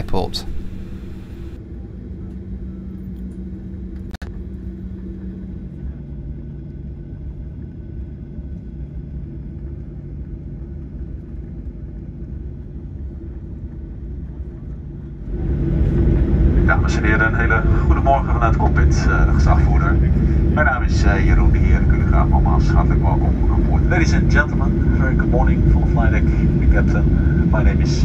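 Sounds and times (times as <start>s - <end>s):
airplane cabin engine hum: 0.0s - 28.0s.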